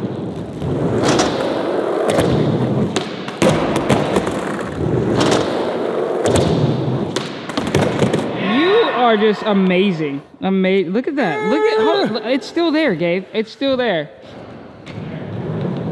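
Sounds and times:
skateboard wheels rolling: 0.0s - 8.8s, 14.2s - 15.9s
skateboard hitting ground: 0.6s - 8.4s.

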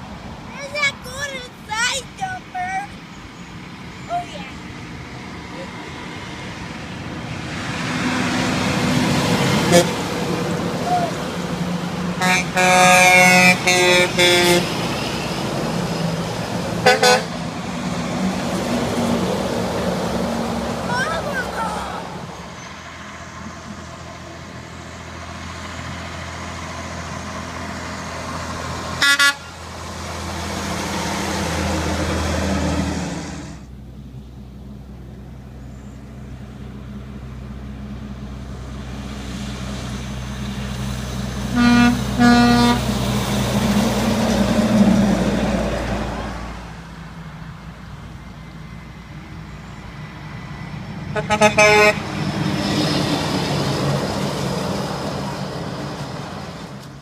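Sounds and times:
heavy trucks rumbling past: 0.0s - 57.0s
truck horn blasts: 9.6s - 10.1s, 12.2s - 14.8s, 16.8s - 17.4s, 29.0s - 29.6s, 41.5s - 43.0s, 51.1s - 52.1s.

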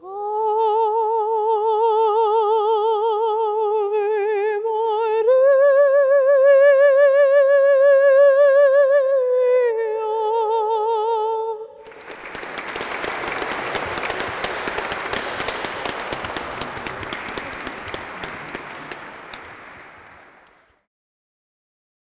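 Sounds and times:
woman singing unaccompanied: 0.0s - 11.8s
audience applause: 11.8s - 20.8s.

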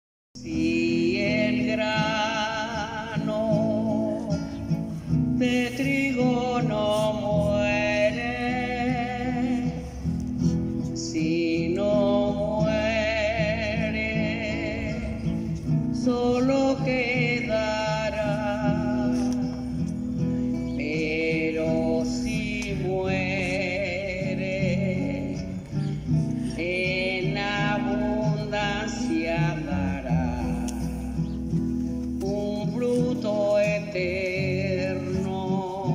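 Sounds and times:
acoustic guitar: 0.4s - 35.9s
person singing: 0.4s - 35.9s.

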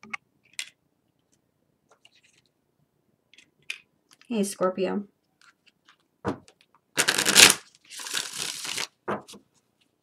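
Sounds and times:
cards riffle shuffled: 7.0s - 9.4s
cards rustling: 7.0s - 9.4s.

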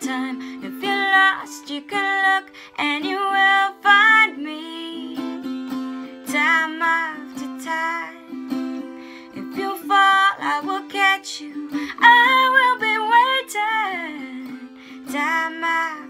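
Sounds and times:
plucked guitar strings: 0.0s - 16.0s
woman singing: 0.0s - 16.0s.

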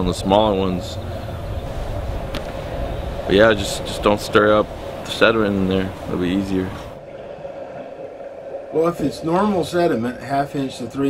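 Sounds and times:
low machine drone: 0.0s - 7.0s.

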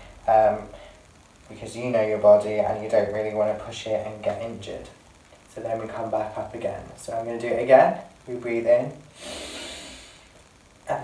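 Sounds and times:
man breathing in: 9.1s - 10.4s.

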